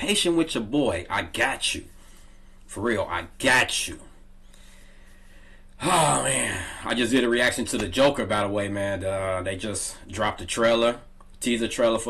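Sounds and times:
man talking: 0:00.0 - 0:01.9, 0:02.7 - 0:04.2, 0:05.8 - 0:12.0
faint steady hum: 0:00.0 - 0:12.0.

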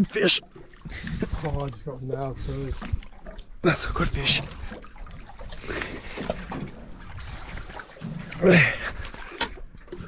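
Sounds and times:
low rumble of wind and sea: 0:00.0 - 0:10.0
water lapping against boat hull: 0:00.0 - 0:10.0.

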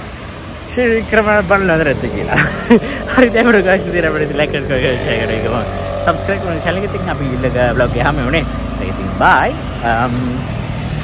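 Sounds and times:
road traffic hum: 0:00.0 - 0:11.0
man talking: 0:00.7 - 0:10.6.

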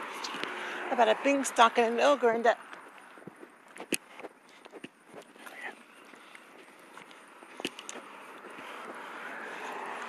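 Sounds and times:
vehicle tyre and road noise: 0:00.0 - 0:10.0.

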